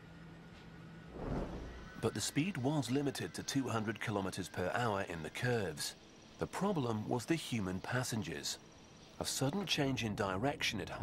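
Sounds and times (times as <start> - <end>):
faint low hum: 0.0 - 11.0
whooshing swell: 1.1 - 2.0.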